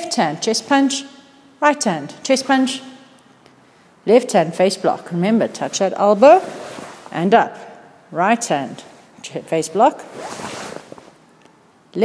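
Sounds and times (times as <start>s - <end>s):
fabric swish and rustle: 5.2s - 7.3s, 10.0s - 11.2s.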